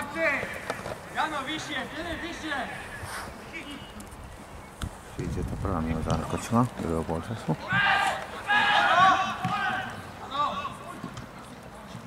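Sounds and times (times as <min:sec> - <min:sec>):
people shouting and calling: 0:07.6 - 0:11.2.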